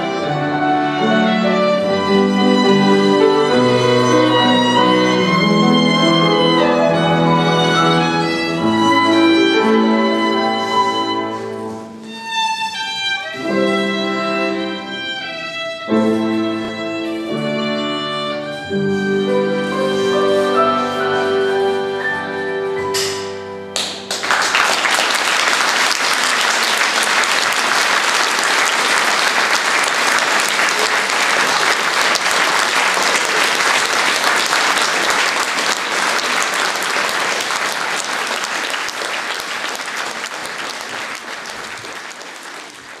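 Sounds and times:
piano violin and accordion chord: 0.0 - 23.9
audience applause: 23.8 - 43.0.

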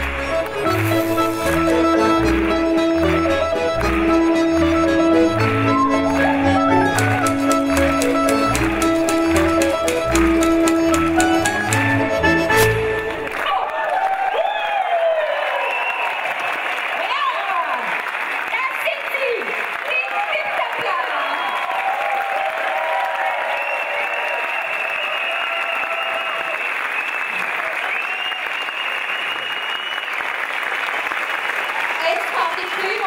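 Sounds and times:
audience applause: 0.0 - 33.0.

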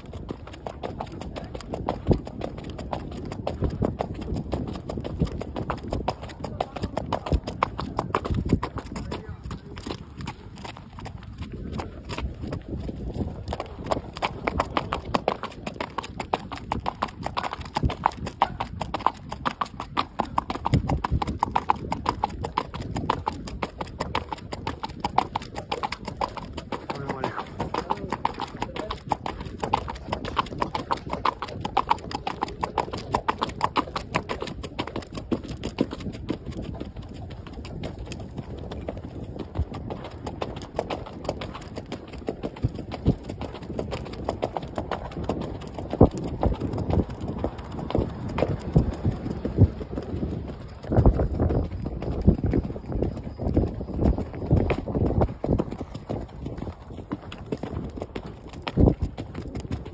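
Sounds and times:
horse hoofbeats: 0.0 - 59.9.

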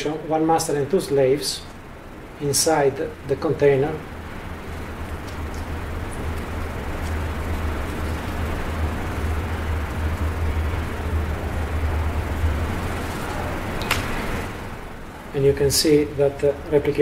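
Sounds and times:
room hum and hiss: 0.0 - 17.0.

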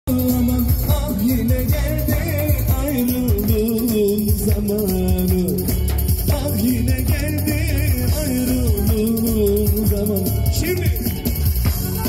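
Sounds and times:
driving drum beat: 0.1 - 12.0
person singing: 0.1 - 12.0.

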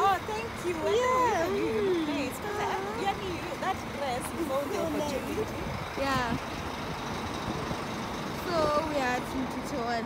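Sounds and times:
woman's voice: 0.0 - 6.5, 8.4 - 10.0
low outdoor rumble: 0.0 - 10.0.

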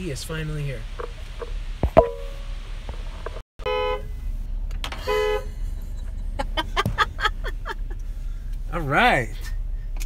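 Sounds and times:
car horn toot: 3.6 - 4.2, 5.0 - 5.6.

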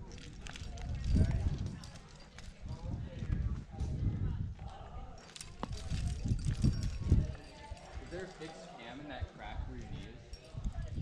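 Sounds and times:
climbing gear clinking: 0.0 - 3.0, 5.2 - 9.1
rumbling wind on microphone: 0.0 - 7.5, 9.5 - 11.0.

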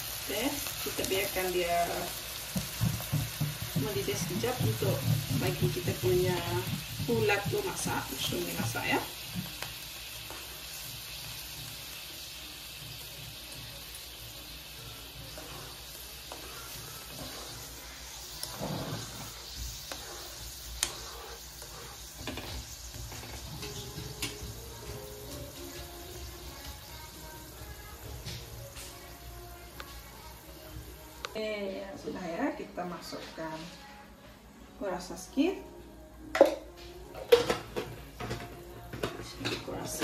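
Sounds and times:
sauce bubbling and hissing: 0.0 - 31.2.

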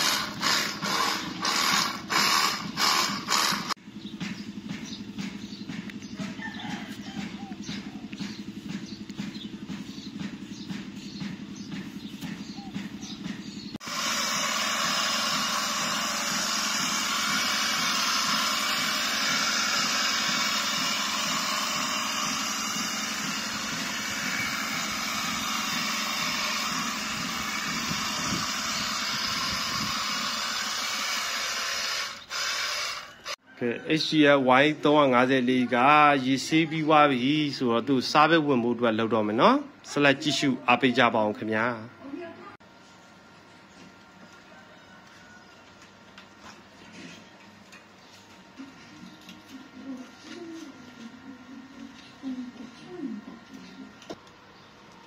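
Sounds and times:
pressure washer pump humming: 0.0 - 33.4.

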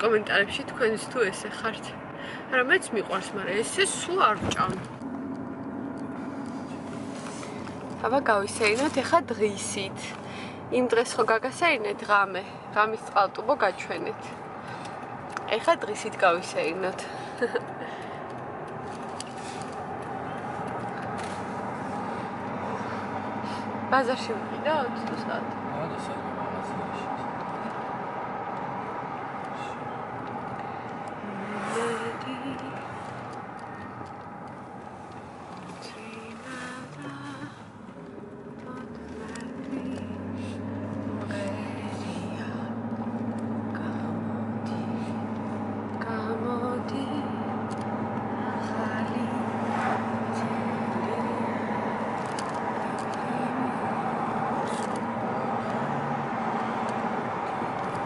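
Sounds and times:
car road and engine noise: 0.0 - 58.0.

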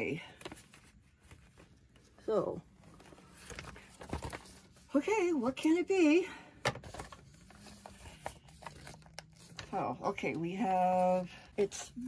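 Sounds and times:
plastic packaging clicks and rustles: 2.9 - 4.7, 6.6 - 10.6.

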